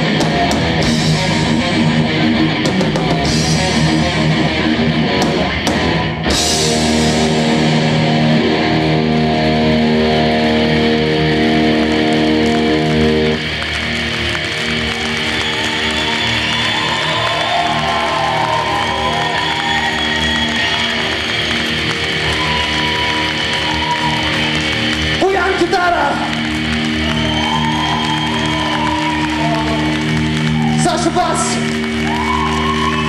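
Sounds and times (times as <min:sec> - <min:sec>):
guitars bending notes: 0:00.0 - 0:15.0
electric guitars and bass chord: 0:00.0 - 0:33.0.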